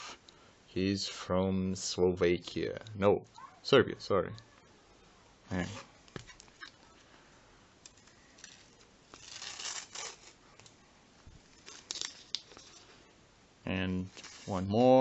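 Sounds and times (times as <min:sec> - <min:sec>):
foil packet crinkling: 0:08.0 - 0:10.7, 0:11.5 - 0:12.9
foil rustling tear: 0:08.4 - 0:10.7, 0:11.5 - 0:12.9, 0:14.1 - 0:14.8.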